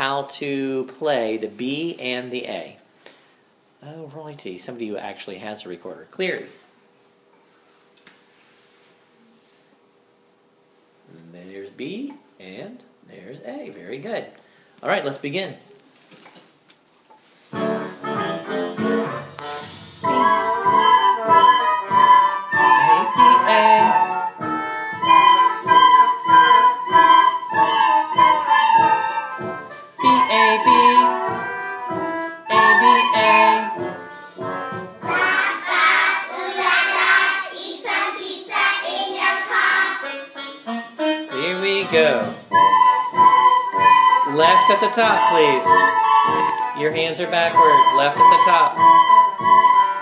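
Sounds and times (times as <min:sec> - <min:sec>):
recorded musical accompaniment: 0:17.5 - 0:37.3, 0:39.1 - 0:50.0
children playing recorders: 0:19.1 - 0:34.5, 0:42.5 - 0:50.0.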